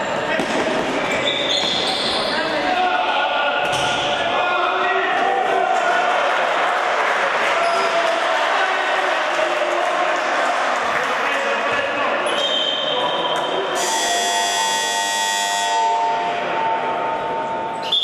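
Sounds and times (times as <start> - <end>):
players and spectators shouting: 1.9 - 18.0
loud shrill tone: 13.7 - 18.0.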